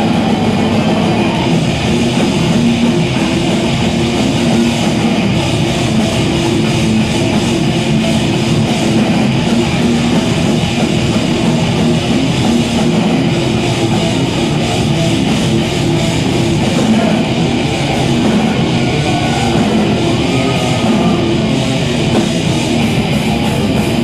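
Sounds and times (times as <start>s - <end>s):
distorted electric guitars: 0.0s - 24.0s
drum kit: 0.0s - 24.0s.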